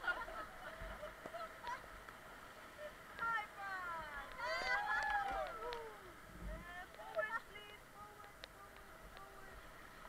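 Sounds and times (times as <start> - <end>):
river water rushing: 0.0 - 10.0.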